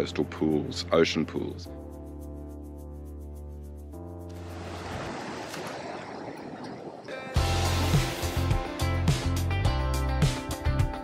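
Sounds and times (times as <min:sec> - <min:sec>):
ocean surf washing against rocks: 0:04.4 - 0:07.5
music with heavy beat: 0:07.4 - 0:11.0.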